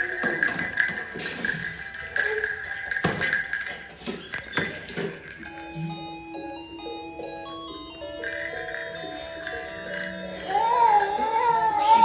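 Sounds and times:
electronic toy melody beeping: 4.0s - 12.0s.

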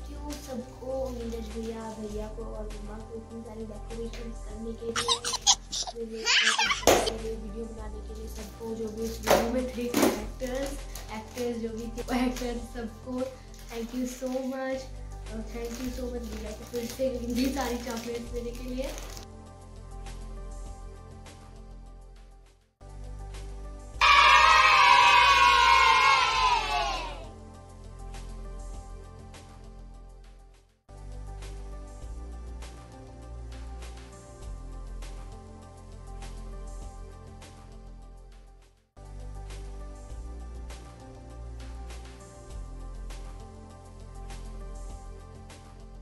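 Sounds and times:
people laughing and giggling: 5.0s - 6.9s
children cheering: 6.2s - 6.8s, 24.0s - 27.3s.

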